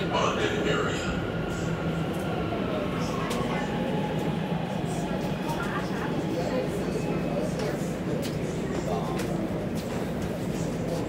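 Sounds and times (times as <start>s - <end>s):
faint passenger voices: 0.0s - 11.0s.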